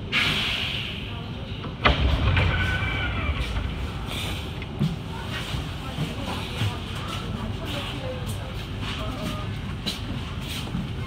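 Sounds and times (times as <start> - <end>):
train air brake hiss: 0.0 - 1.3.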